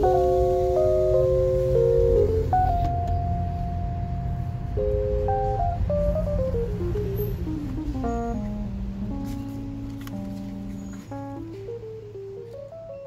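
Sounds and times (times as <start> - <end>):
steady low rumble: 0.0 - 12.4
background music with held notes: 0.0 - 13.0.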